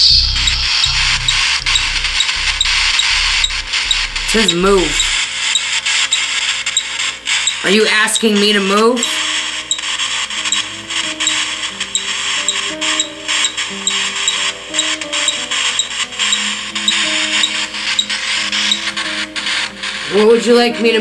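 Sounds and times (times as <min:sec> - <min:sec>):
slow low music notes: 0:00.0 - 0:05.2
static hiss with small ticks: 0:00.0 - 0:08.4, 0:09.0 - 0:20.2.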